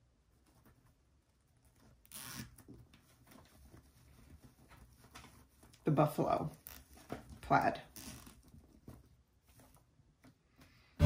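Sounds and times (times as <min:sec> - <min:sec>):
fabric rustling: 0:00.2 - 0:10.2.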